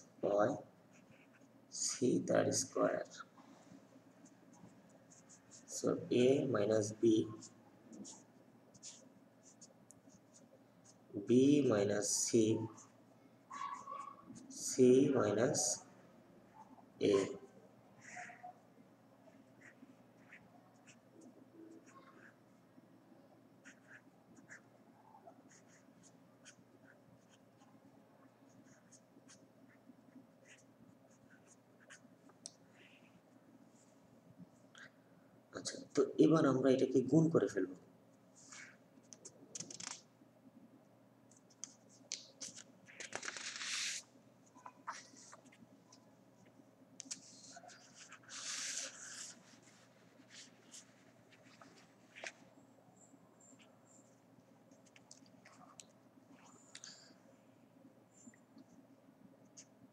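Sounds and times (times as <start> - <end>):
felt-tip marker scratching on paper: 7.4 - 11.0, 19.5 - 22.4, 23.6 - 24.6, 25.5 - 27.4, 28.6 - 32.0, 47.1 - 51.6.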